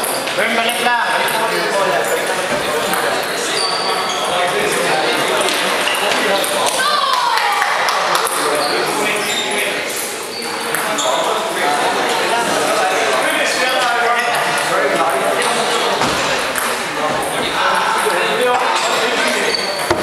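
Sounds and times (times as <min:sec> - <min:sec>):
background chatter in a hall: 0:00.0 - 0:20.0.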